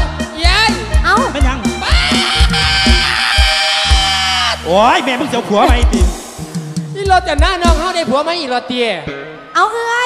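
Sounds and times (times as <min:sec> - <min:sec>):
band holding a long note: 0:01.7 - 0:06.7
person crying out: 0:01.8 - 0:04.6.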